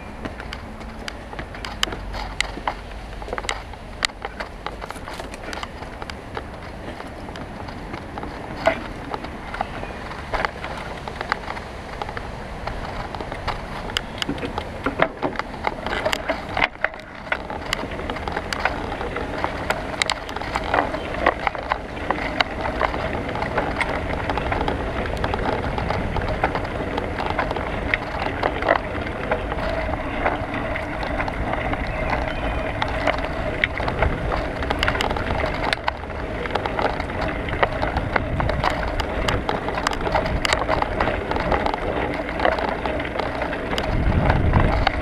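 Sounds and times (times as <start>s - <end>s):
bicycle tyres rolling: 0.0s - 45.0s
rattles and knocks from bumps: 0.0s - 45.0s.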